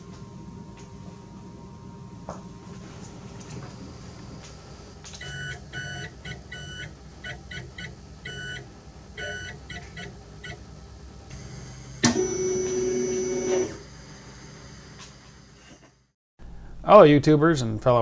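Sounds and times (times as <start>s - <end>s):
morse code beeps: 5.2s - 8.6s, 9.2s - 10.6s.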